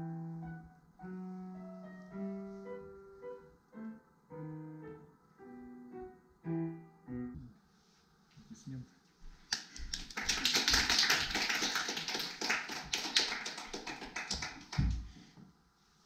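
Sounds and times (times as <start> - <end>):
audience applauding: 9.5 - 15.0.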